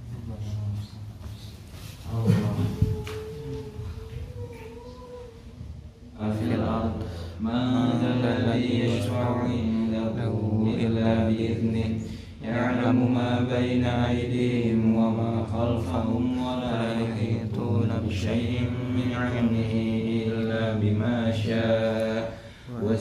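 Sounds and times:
man chanting: 2.0s - 5.2s, 6.2s - 23.0s.

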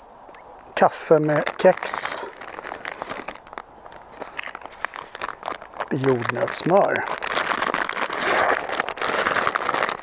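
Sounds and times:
light clicks and rustles: 0.3s - 10.0s
wrappers crinkling: 0.8s - 10.0s.

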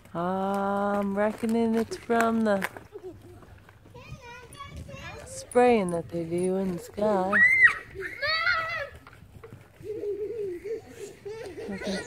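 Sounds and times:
child calling out: 7.3s - 9.0s
quiet talking: 9.8s - 12.0s.

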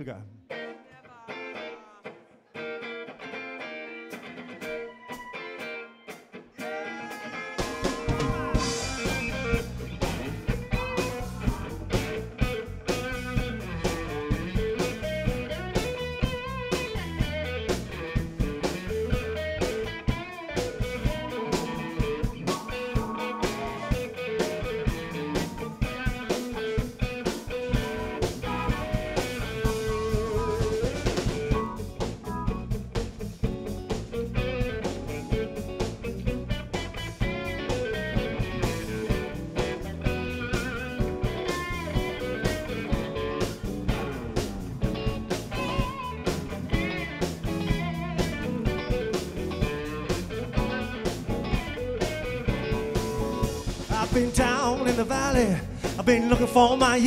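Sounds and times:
electric guitar: 0.2s - 57.0s
drums and bass beat: 7.0s - 57.0s.

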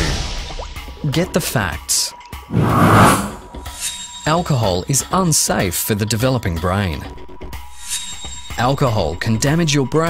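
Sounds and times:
noisy whoosh sound effect: 2.5s - 3.6s.

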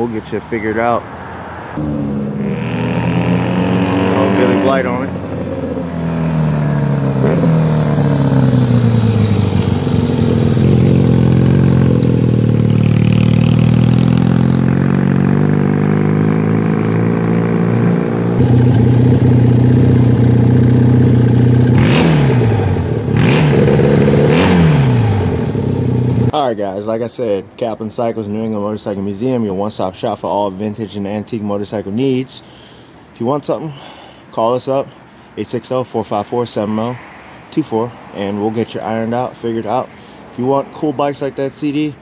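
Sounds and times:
motorcycle engine running: 4.2s - 26.3s
motorcycle engine idling: 6.5s - 15.9s, 18.4s - 26.3s.

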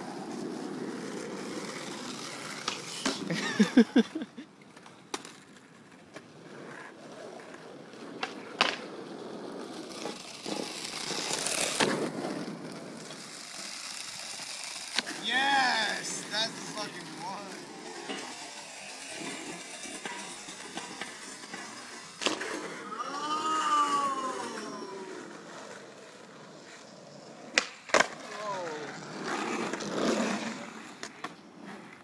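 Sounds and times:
skateboard wheels rolling on asphalt: 0.0s - 32.0s
skateboard clacking on pavement: 4.6s - 15.2s, 27.4s - 31.9s
voice sliding down in pitch: 22.8s - 25.6s.

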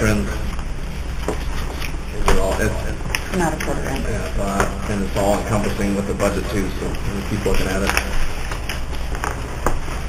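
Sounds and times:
low hum and hiss: 0.0s - 10.0s
papers being shuffled: 5.6s - 10.0s.

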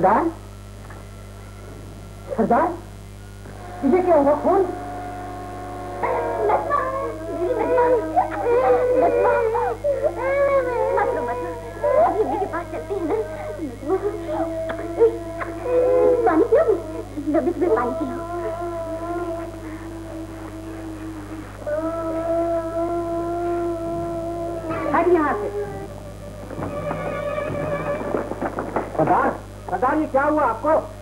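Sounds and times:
low soundtrack hum: 0.5s - 29.7s
children crying and whimpering: 3.6s - 29.0s.

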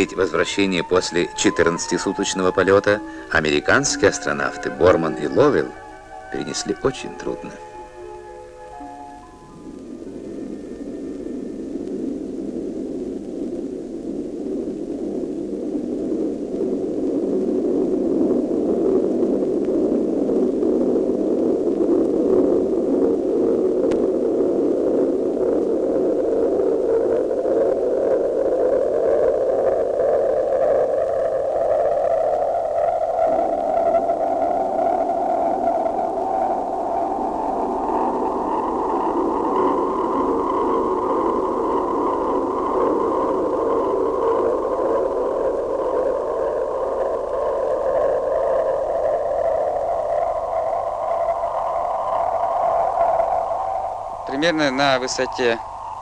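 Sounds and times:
rushing roar with whistling edge: 0.0s - 56.0s.

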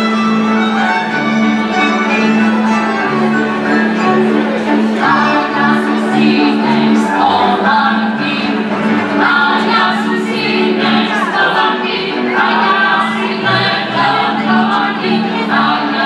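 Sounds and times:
folk band playing: 0.0s - 16.0s
group singing folk song: 4.4s - 16.0s.

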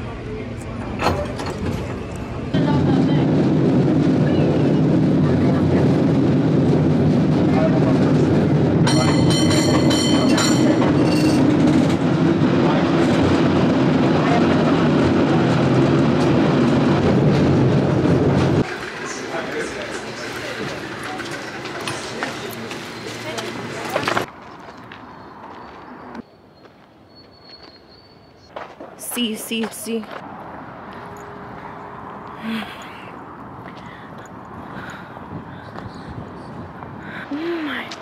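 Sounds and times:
cable car rumbling on track: 0.0s - 24.3s, 31.6s - 38.0s
cable car bell clanging: 8.8s - 12.0s.

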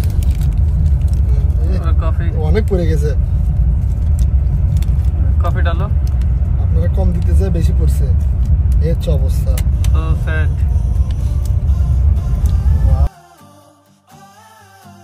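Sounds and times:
bus road and engine rumble: 0.0s - 13.1s.

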